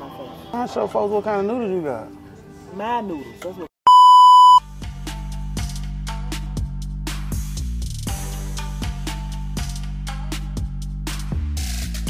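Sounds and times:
high test-tone beep: 3.9s - 4.6s
music with bass and light percussion: 4.6s - 12.0s.

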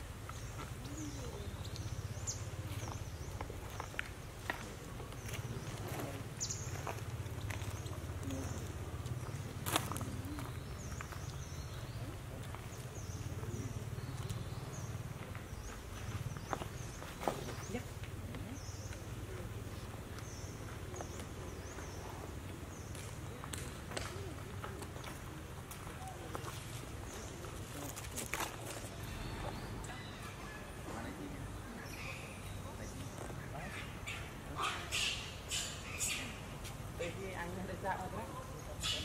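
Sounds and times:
monkeys stepping in dry leaves: 0.1s - 39.0s.

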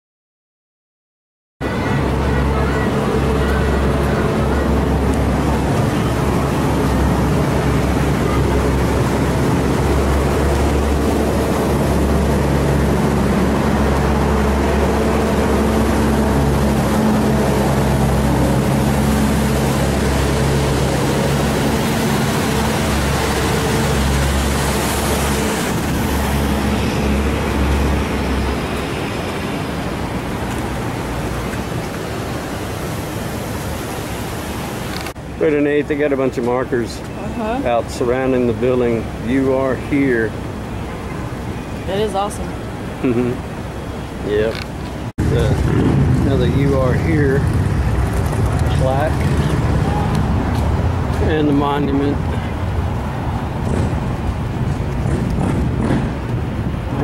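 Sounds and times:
constant rushing noise: 1.6s - 57.0s.

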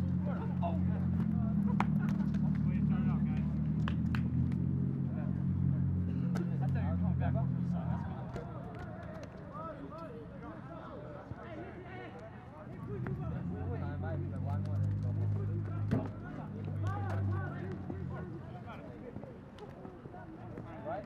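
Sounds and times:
vehicle engine running: 0.0s - 8.3s.

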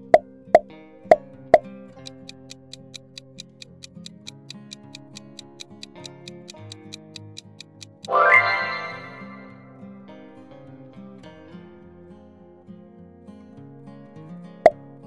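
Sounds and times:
light background music: 0.0s - 12.6s
countdown timer ticking: 2.0s - 9.7s
pop sound effects: 8.0s - 9.6s.

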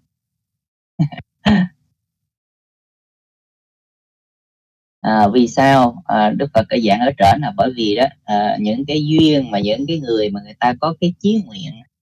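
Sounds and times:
person clearing throat: 1.0s - 1.8s.

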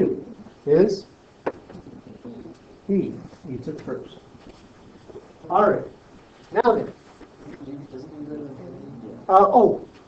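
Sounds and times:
faint low voice murmur: 1.7s - 3.6s.

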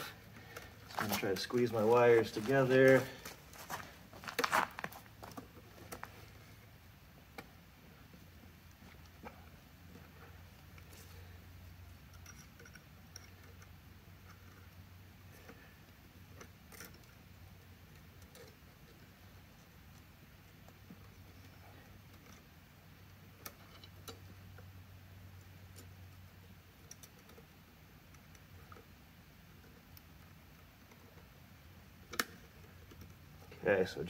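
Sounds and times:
low steady hum: 0.0s - 34.0s
wire clicking and scratching: 12.0s - 22.6s, 23.3s - 24.7s, 26.7s - 29.0s, 32.0s - 33.5s.

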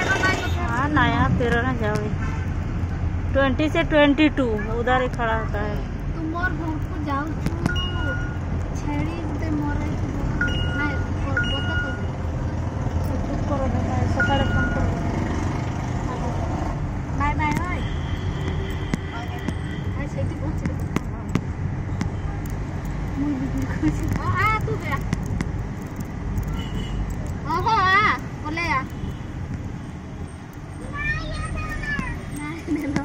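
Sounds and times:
vehicle engine and road noise: 0.0s - 33.0s.

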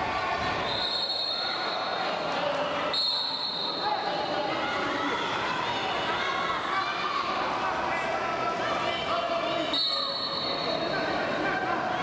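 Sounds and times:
crowd voices echoing in hall: 0.0s - 12.0s
high steady whistle blast: 2.9s - 3.8s.

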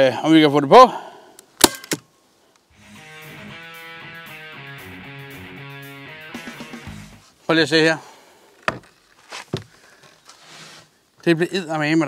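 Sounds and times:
background music: 2.7s - 7.3s.

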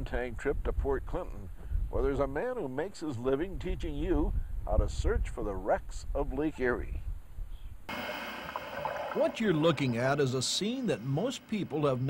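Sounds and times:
steady hiss with faint whine: 7.4s - 12.0s.

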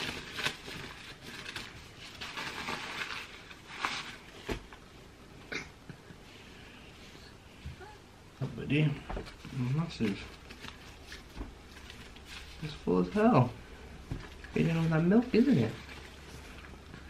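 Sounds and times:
disposable nappy crinkling: 9.2s - 17.0s.

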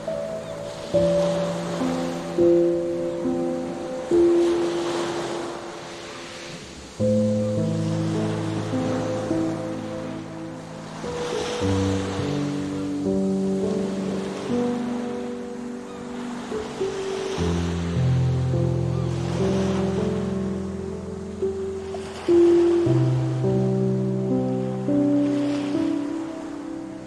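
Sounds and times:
calm music of held chords: 0.0s - 27.0s
ocean surf: 0.0s - 27.0s.

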